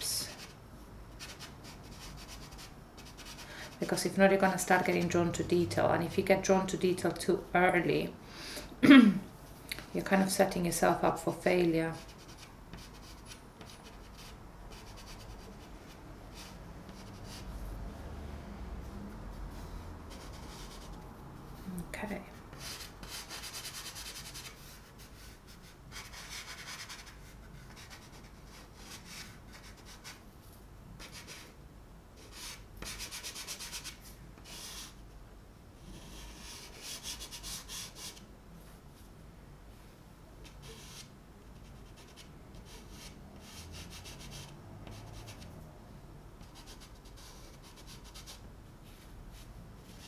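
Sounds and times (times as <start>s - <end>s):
chalk pastel scratching on paper: 0.2s - 5.3s, 11.9s - 17.6s, 19.2s - 21.0s, 22.5s - 30.2s, 31.0s - 31.5s, 32.2s - 35.0s, 35.8s - 38.2s, 40.4s - 45.5s, 46.4s - 50.0s.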